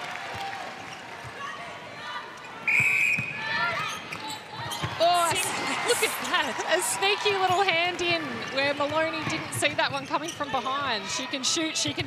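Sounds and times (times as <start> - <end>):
indoor crowd murmur: 0.0 - 12.0
whistle blowing: 2.6 - 3.5
ball bouncing on court: 7.2 - 12.0.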